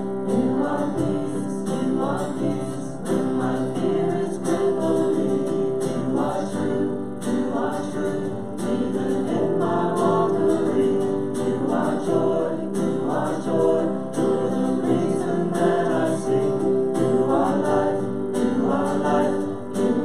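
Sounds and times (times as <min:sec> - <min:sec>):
guitar: 0:00.0 - 0:20.0
piano: 0:00.0 - 0:20.0
women singing together: 0:00.0 - 0:20.0.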